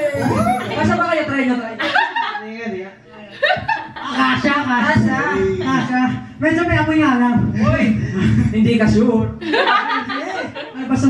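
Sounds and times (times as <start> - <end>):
chuckling laughter: 0.0 - 0.8
person talking: 0.0 - 1.0.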